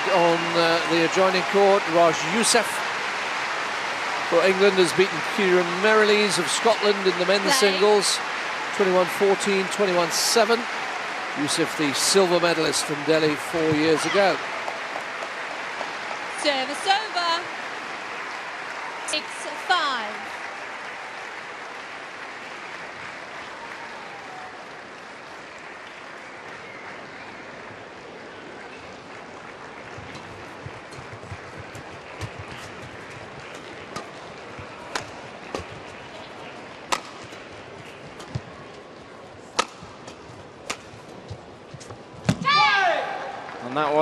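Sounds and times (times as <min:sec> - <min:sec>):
rackets striking shuttlecock: 0:39.5 - 0:40.9
person shouting: 0:42.4 - 0:43.3.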